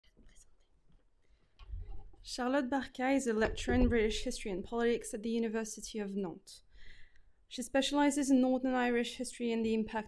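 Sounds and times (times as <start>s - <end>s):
microphone handling rumble: 3.4s - 4.4s.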